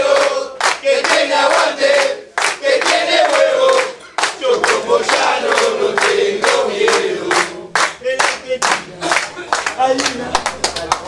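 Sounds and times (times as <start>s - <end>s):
men chanting: 0.0s - 9.0s
men clapping in rhythm: 0.0s - 11.0s.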